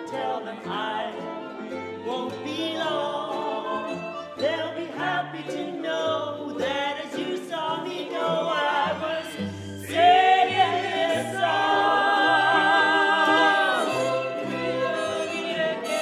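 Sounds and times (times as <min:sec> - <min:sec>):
small string and brass ensemble: 0:00.0 - 0:16.0
voices singing with vibrato: 0:00.0 - 0:16.0.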